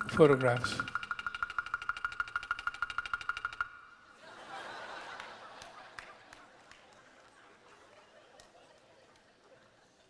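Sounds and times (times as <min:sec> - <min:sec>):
rapid clicking with ringing tone: 0:00.0 - 0:04.0.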